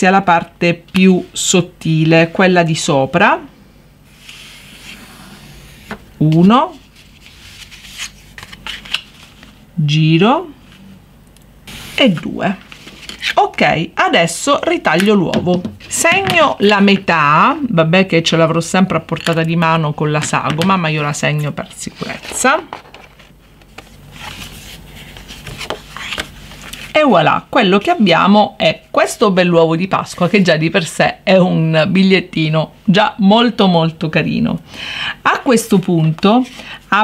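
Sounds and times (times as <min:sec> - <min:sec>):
paper rustling: 0:04.2 - 0:09.6, 0:12.6 - 0:13.4, 0:21.8 - 0:27.0.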